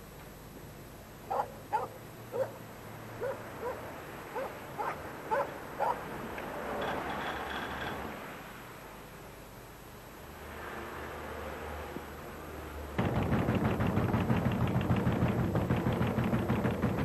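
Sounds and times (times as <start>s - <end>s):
dog barking: 1.3s - 2.6s, 3.2s - 6.0s.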